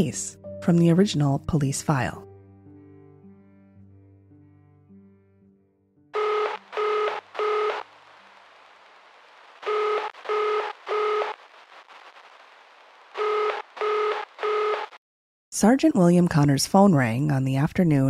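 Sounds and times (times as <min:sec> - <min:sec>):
electronic telephone ringing: 0:06.2 - 0:07.9, 0:09.6 - 0:11.4, 0:13.2 - 0:14.9.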